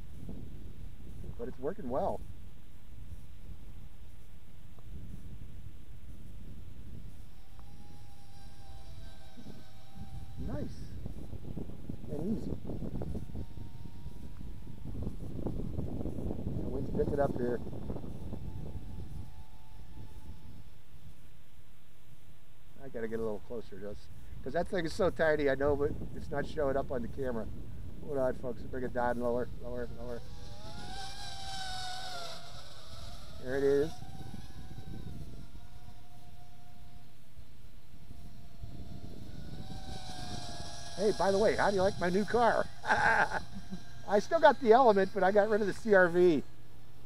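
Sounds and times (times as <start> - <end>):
wind buffeting microphone: 0.0 - 21.7, 22.7 - 47.0
faint drone motor whine: 0.0 - 47.0.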